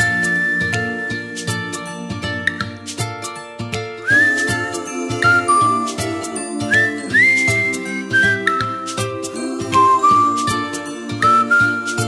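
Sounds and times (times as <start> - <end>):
whistle-like synth melody: 0.0 - 2.6, 4.0 - 12.0
light beat: 0.0 - 12.0
chiming chords: 4.5 - 11.8.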